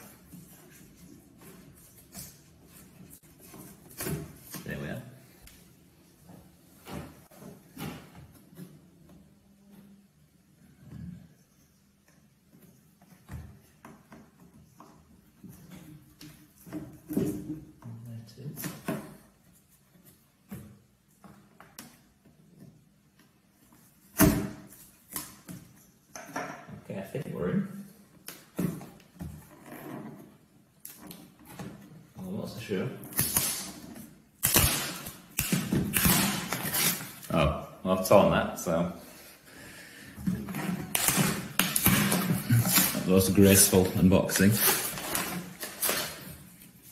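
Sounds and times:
knife scraping packing tape: 33.1s - 37.3s, 44.4s - 46.3s.

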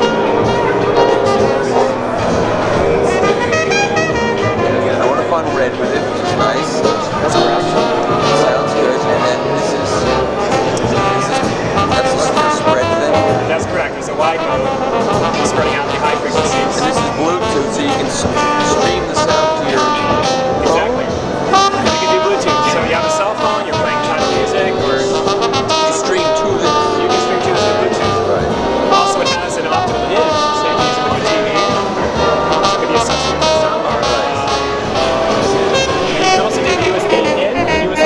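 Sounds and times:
background voices: 0.0s - 38.0s
jazz with brass on record player: 0.0s - 38.0s.

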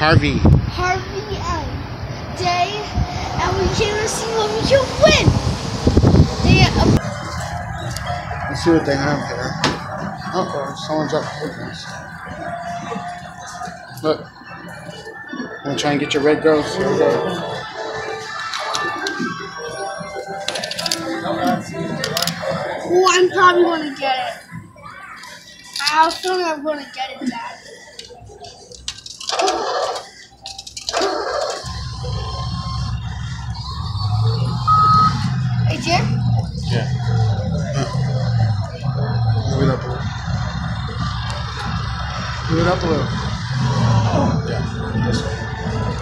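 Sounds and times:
electronic game machine music: 6.5s - 26.1s, 30.0s - 46.0s
background voices: 31.6s - 46.0s
game machine music: 31.7s - 42.5s.

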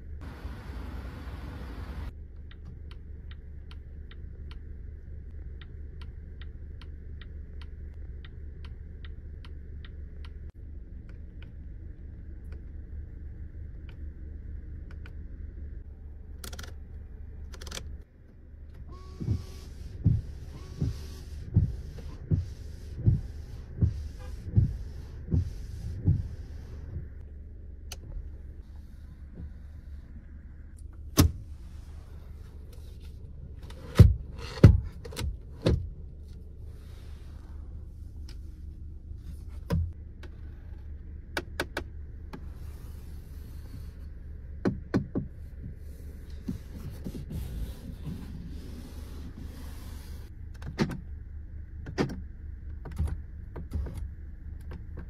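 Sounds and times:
clicks from cabin controls: 2.3s - 4.7s, 16.4s - 26.3s, 27.8s - 28.2s, 30.2s - 31.4s, 32.6s - 36.5s, 41.3s - 42.5s, 44.6s - 47.3s, 50.4s - 51.1s, 51.8s - 55.0s
windscreen wipers thumping: 18.7s - 27.2s, 29.2s - 32.0s, 32.8s - 36.4s, 39.4s - 40.4s, 44.4s - 50.0s.

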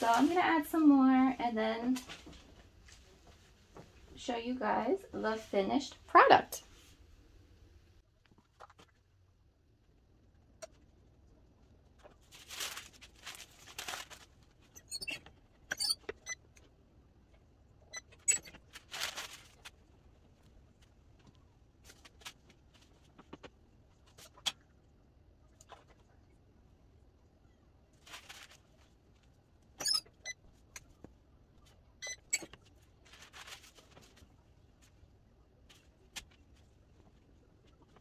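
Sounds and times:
paper rustling: 12.0s - 14.6s, 18.5s - 20.0s, 21.8s - 24.5s, 28.0s - 28.9s, 32.6s - 35.0s.

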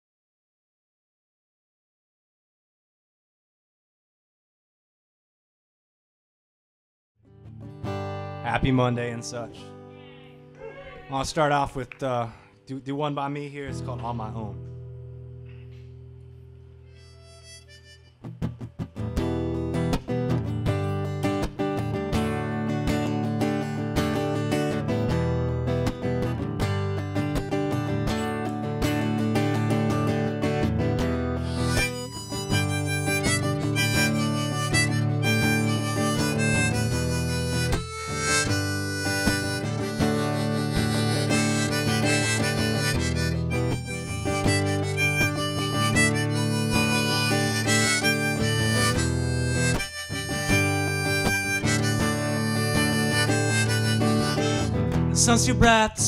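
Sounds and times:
strummed acoustic guitar: 7.3s - 9.9s, 17.8s - 56.0s
harmonica playing: 16.8s - 19.9s, 31.0s - 55.8s.

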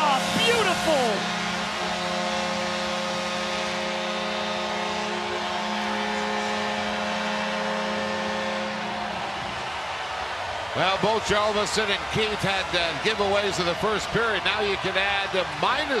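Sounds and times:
goal horn blaring: 0.0s - 10.0s
crowd cheering and clapping: 0.0s - 16.0s.

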